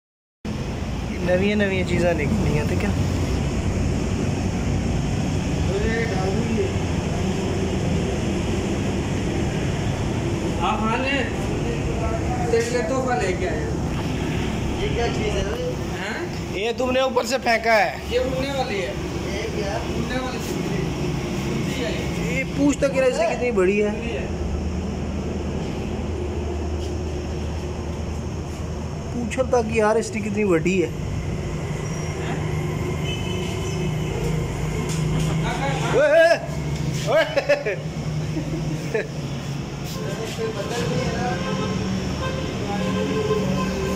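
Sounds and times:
man talking: 1.1s - 3.0s, 14.7s - 21.0s, 21.6s - 24.4s, 29.1s - 31.0s, 35.3s - 37.7s.

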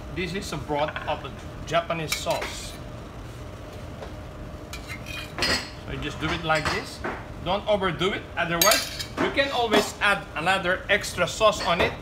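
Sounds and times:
metal spoon clinking on saucepan: 8.6s - 9.1s.

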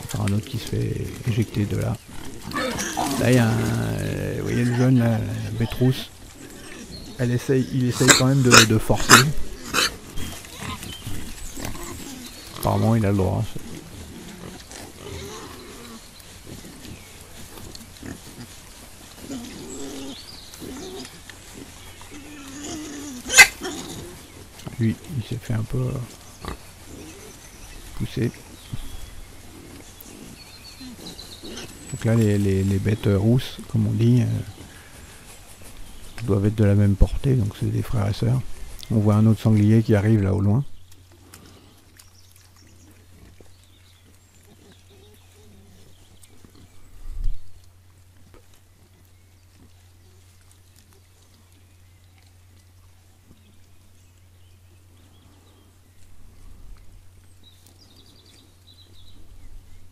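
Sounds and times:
wild boar grunting: 0.0s - 39.0s.

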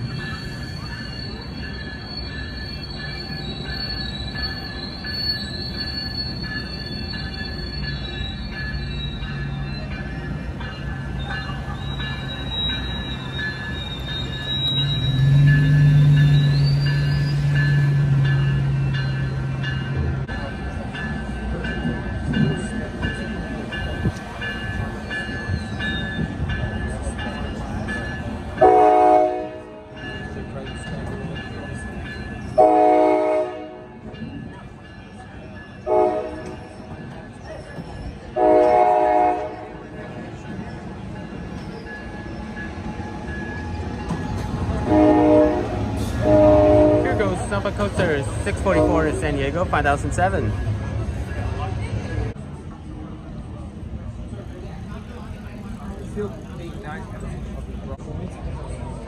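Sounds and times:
train rumbling past: 0.0s - 59.0s
train diesel horn: 28.6s - 29.9s, 32.6s - 34.0s, 35.8s - 36.6s, 38.4s - 39.8s, 44.8s - 47.5s.

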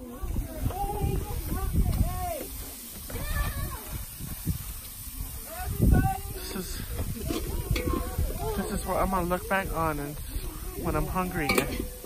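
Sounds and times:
meat sizzling on a grill: 0.0s - 12.0s
people talking in background: 0.0s - 12.0s.

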